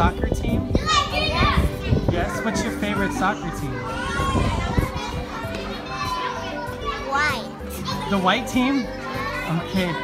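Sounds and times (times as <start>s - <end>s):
children playing and chattering: 0.0s - 10.0s.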